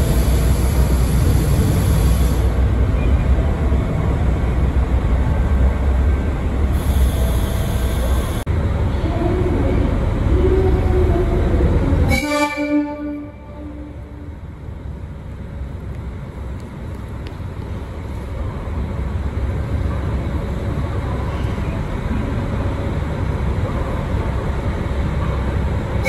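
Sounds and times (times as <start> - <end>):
diesel railcar engines rumbling: 0.0 - 26.0
diesel train horn: 12.0 - 14.2.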